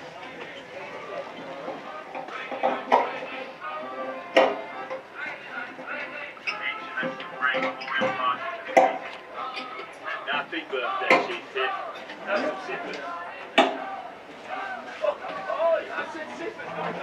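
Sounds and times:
music playing: 0.0 - 17.0
voices murmuring: 0.0 - 17.0.

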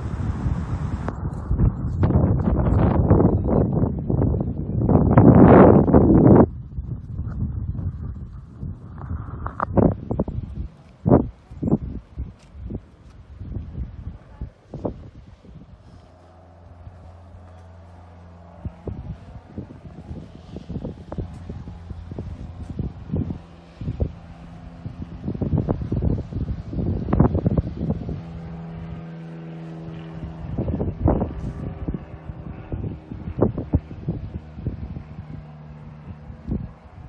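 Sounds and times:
steady low hum: 0.0 - 37.0
wind buffeting microphone: 0.0 - 37.0.

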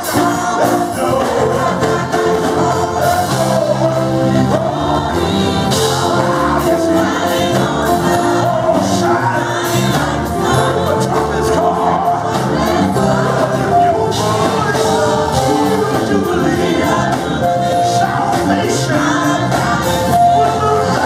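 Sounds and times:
choir singing: 0.0 - 21.0
church band with keyboard: 0.0 - 21.0.

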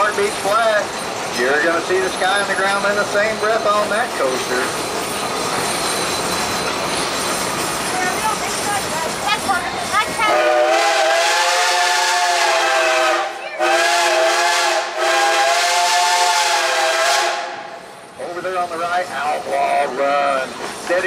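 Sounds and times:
train rolling: 0.0 - 21.0
steam locomotive whistle: 10.2 - 17.8.

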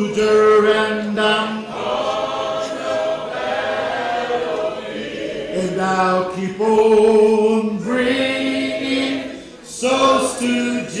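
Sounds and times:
man singing a hymn: 0.0 - 2.0, 5.5 - 11.0
voices singing behind: 0.0 - 11.0.

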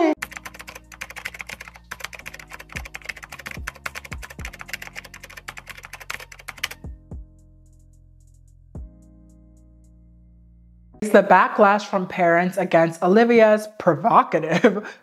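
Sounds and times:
soft background music: 0.0 - 14.6
fast keyboard typing clicks: 0.2 - 6.9.

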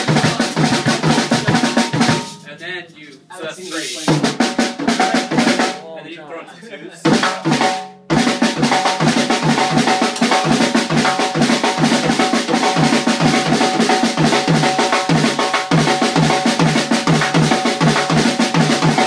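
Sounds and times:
drum kit playing fast groove: 0.0 - 2.5, 3.6 - 5.9, 7.0 - 19.0.

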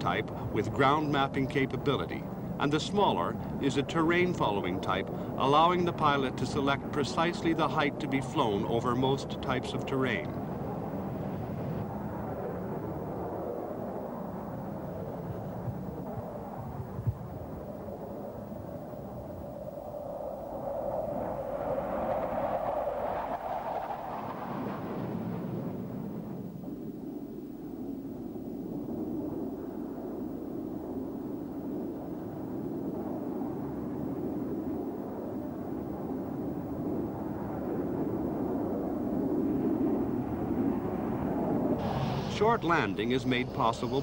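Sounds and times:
jet engine rumbling rush: 0.0 - 44.0.

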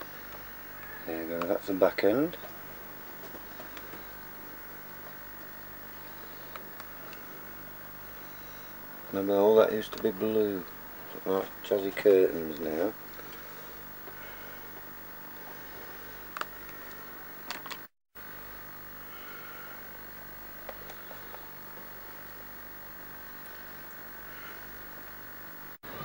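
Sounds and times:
faint steady tones: 0.0 - 26.0
recording hum: 0.0 - 26.0.

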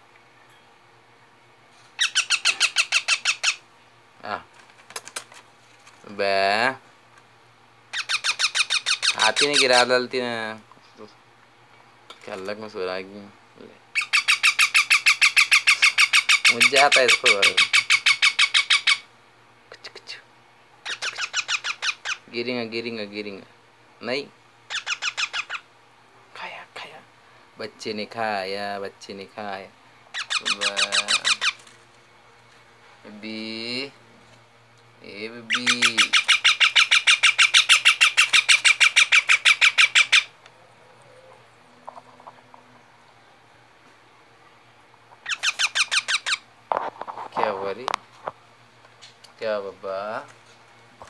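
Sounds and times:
parrot squawking: 2.0 - 3.6, 7.9 - 9.9, 13.9 - 19.1, 20.8 - 22.3, 24.7 - 25.7, 30.1 - 31.6, 35.4 - 41.4, 45.2 - 46.5.

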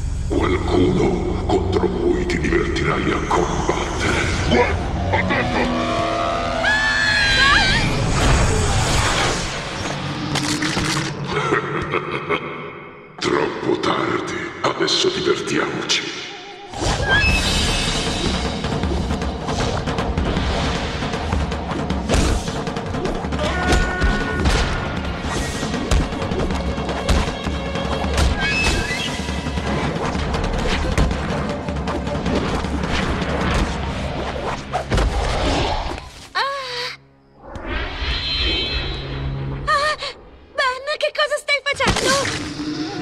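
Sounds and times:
action cartoon music: 0.0 - 12.0, 16.7 - 36.3.

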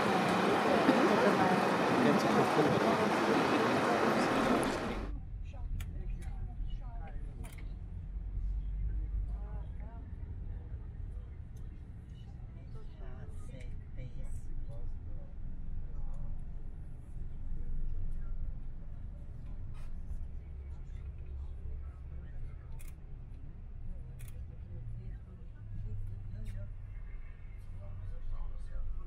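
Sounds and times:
loud rushing noise: 0.0 - 5.1
faint voices talking: 0.0 - 7.7.

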